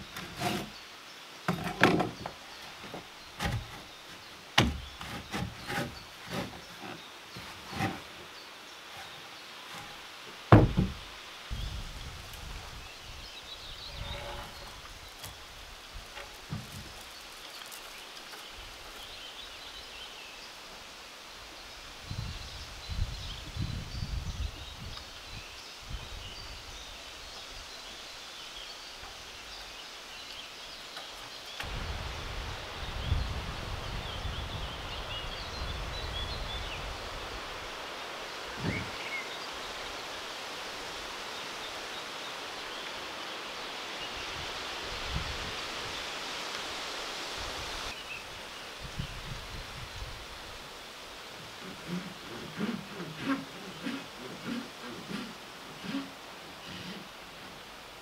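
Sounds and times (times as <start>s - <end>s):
grass and leaves rustling: 0.0s - 58.0s
short thump: 10.5s - 11.0s
wind gusting on microphone: 10.5s - 16.1s, 22.0s - 26.9s, 31.6s - 37.8s, 44.0s - 50.8s.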